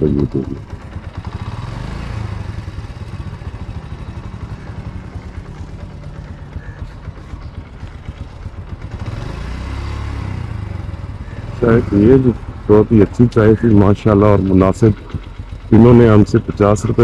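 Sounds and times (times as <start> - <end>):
motorcycle engine running slowly: 0.0 - 17.0.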